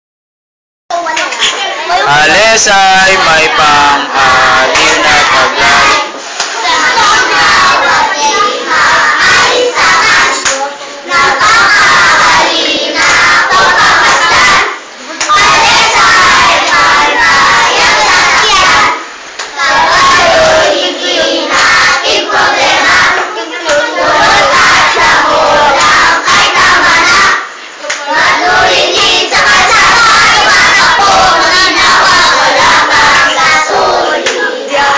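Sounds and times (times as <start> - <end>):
children singing loudly in unison: 1.8 - 34.9.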